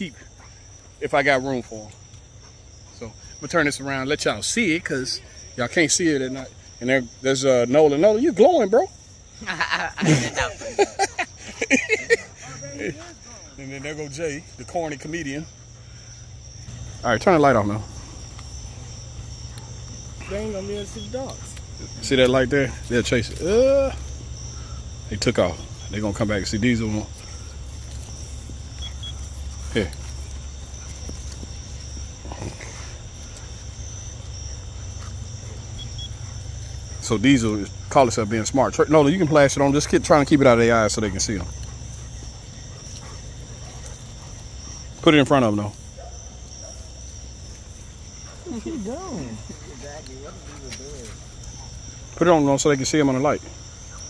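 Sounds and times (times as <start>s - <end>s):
crickets trilling: 0.0s - 54.0s.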